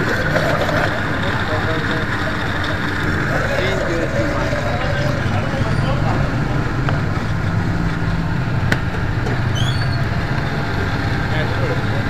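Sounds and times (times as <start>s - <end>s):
blender motor running: 0.0s - 5.5s.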